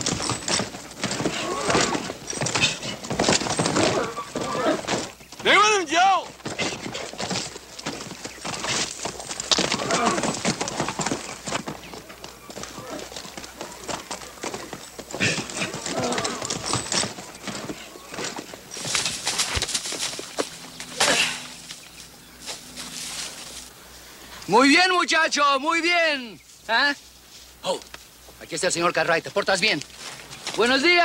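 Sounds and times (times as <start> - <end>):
horse hooves thudding on dirt: 0.0 - 23.8.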